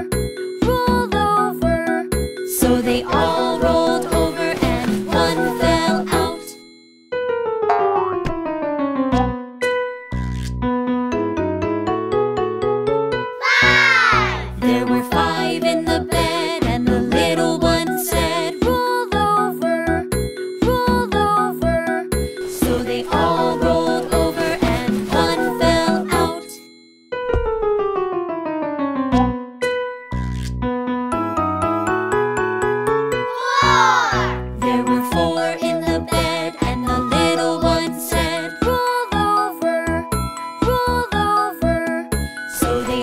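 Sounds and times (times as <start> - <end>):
children's song instrumental: 0.0 - 6.8, 7.4 - 10.0, 13.3 - 26.8, 31.2 - 43.0
short keyboard notes: 7.6 - 8.5.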